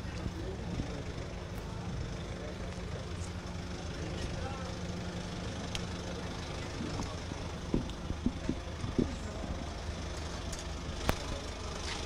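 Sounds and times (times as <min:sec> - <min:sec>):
faint voices: 0:00.0 - 0:12.0
van engine idling: 0:00.0 - 0:12.0.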